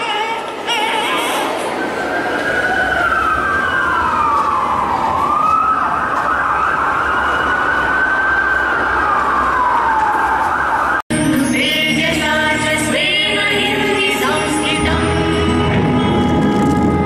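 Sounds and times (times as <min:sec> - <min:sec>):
siren wailing: 0:01.8 - 0:11.0, 0:13.7 - 0:17.0.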